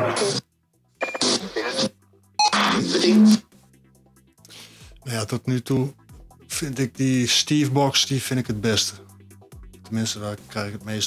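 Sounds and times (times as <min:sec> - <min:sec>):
radio sweep of voices and music: 0:00.0 - 0:11.0.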